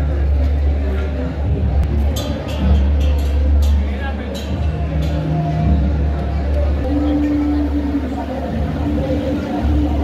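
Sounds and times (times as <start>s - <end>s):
people talking: 0.0s - 10.0s
loud steady low hum: 4.5s - 10.0s.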